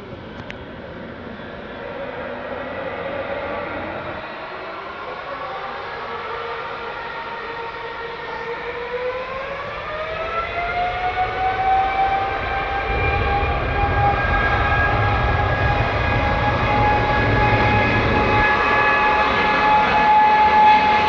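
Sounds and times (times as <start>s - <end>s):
jet engine deep rumble: 0.0s - 21.0s
jet engine whine: 0.0s - 21.0s.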